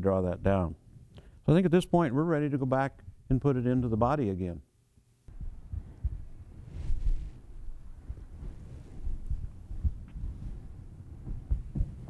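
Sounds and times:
clothing rubbing on microphone: 5.3s - 12.0s
muffled footsteps: 5.3s - 12.0s.

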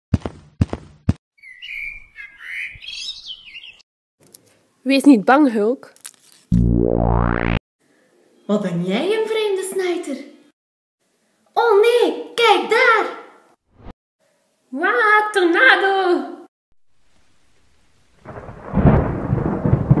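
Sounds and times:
bird-like chirping: 1.4s - 3.8s
rumbling storm noise: 18.2s - 20.0s.

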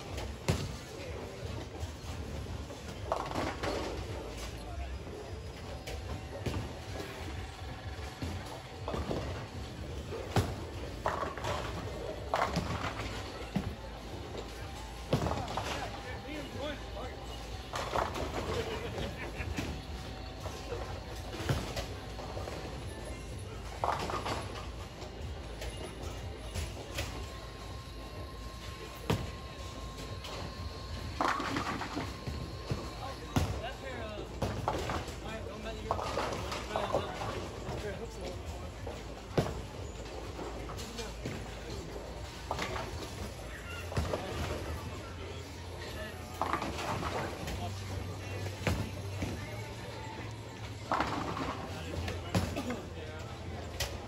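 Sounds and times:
voices: 2.8s - 54.0s.

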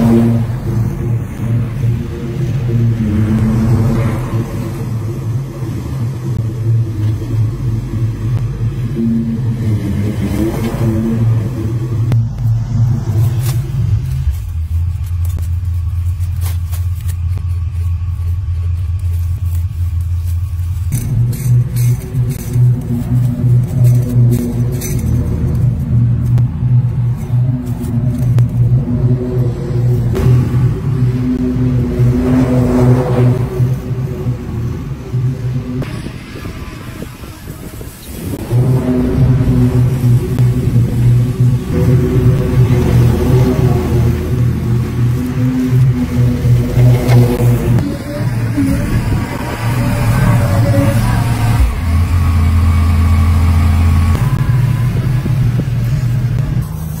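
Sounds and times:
riding mower engine running: 0.0s - 57.0s.

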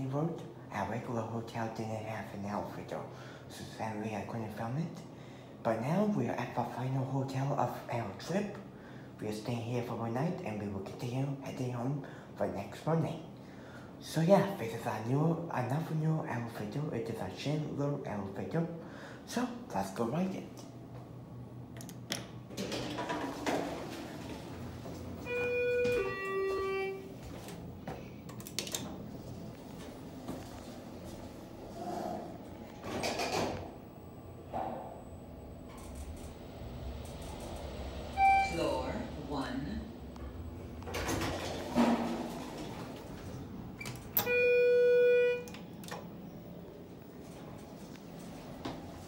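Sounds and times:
elevator door and car running: 22.3s - 31.7s, 32.4s - 49.0s
elevator beeps: 25.2s - 27.6s, 35.7s - 46.5s.

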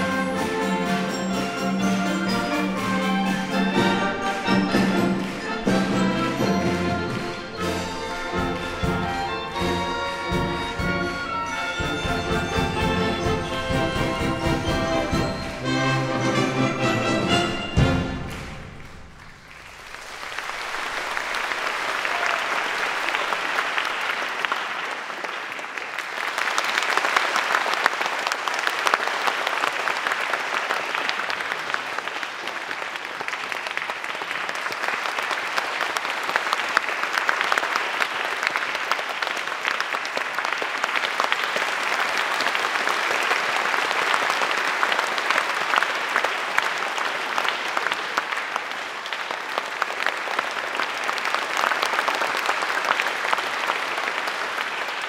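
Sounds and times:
audience applause: 0.0s - 55.0s.

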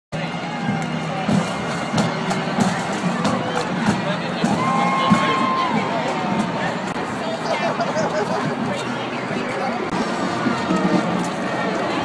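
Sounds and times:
crowd chatter: 0.1s - 12.0s
parade band music: 0.2s - 12.0s
steady drum beat: 0.6s - 8.6s.

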